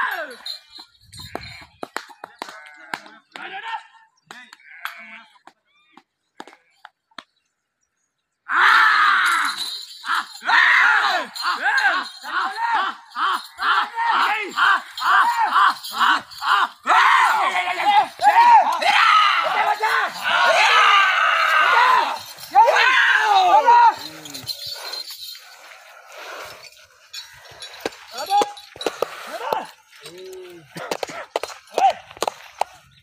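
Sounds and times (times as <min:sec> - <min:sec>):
men shouting: 0:08.5 - 0:24.7.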